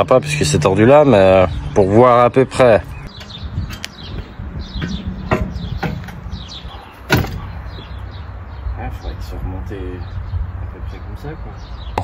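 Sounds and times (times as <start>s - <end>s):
metal knocks and clanks: 4.7s - 7.9s.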